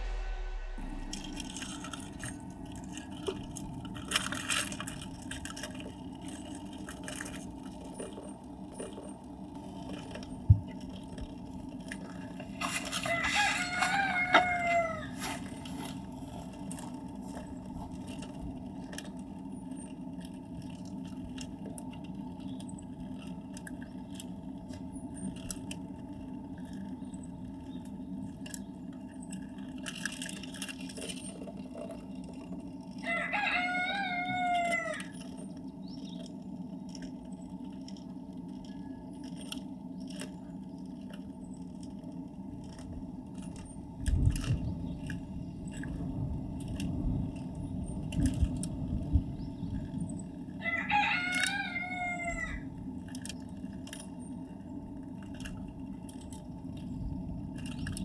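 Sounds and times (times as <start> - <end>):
low background hum: 0.0 - 58.0
rooster crowing: 12.6 - 15.5, 33.0 - 35.2, 50.6 - 52.7.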